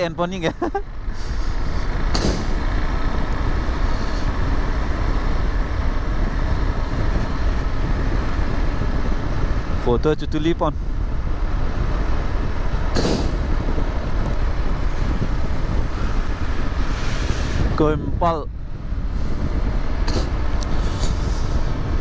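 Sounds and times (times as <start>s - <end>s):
wind rushing over microphone: 0.0s - 22.0s.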